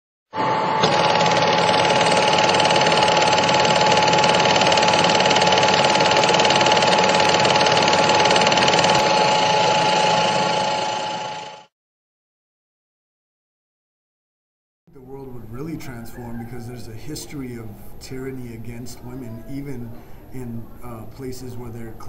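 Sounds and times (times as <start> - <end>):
mechanical whirring: 0.4 - 11.7.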